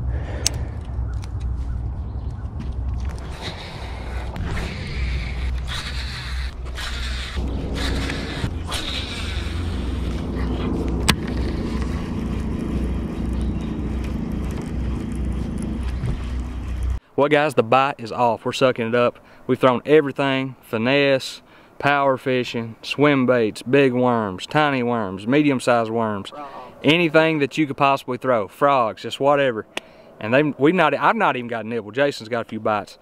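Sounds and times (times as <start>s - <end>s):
steady hum: 0.0s - 17.0s.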